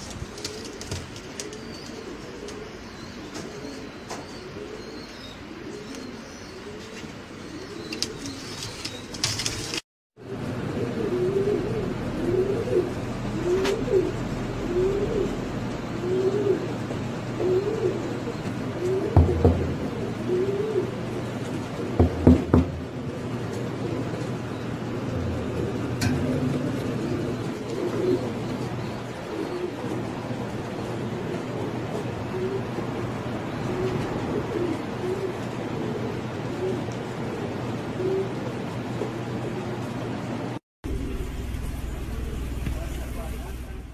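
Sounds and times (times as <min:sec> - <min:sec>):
pigeons cooing: 0:00.0 - 0:39.8
dull low bump: 0:19.2 - 0:20.0, 0:24.8 - 0:27.6.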